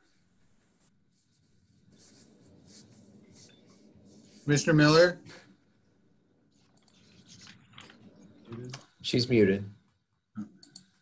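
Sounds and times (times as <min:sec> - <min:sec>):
faint scratchy rustling: 0:00.0 - 0:05.5, 0:06.5 - 0:08.8.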